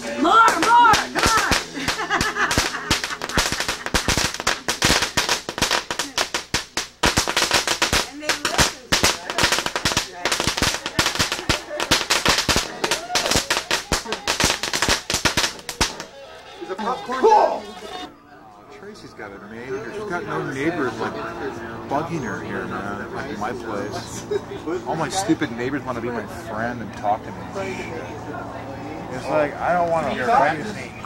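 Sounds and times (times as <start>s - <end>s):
firecrackers cracking: 0.0s - 18.1s.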